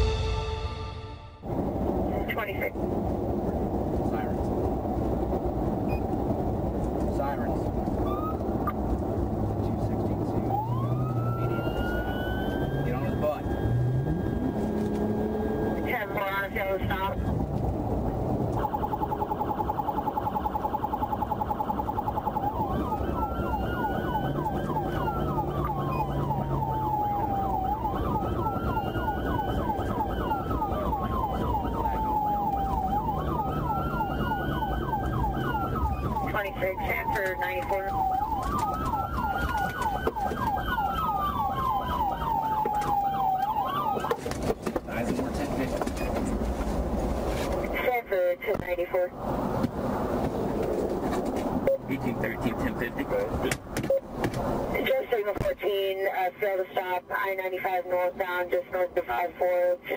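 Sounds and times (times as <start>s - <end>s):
road and engine noise: 1.4s - 59.9s
police siren wailing and yelping: 7.8s - 8.9s, 9.7s - 17.5s, 18.3s - 44.5s.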